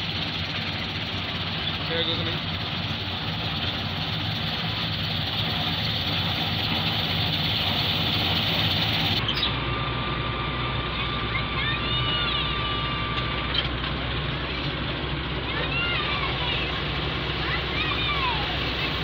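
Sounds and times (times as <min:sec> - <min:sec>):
harvester engine drone: 0:00.0 - 0:19.0.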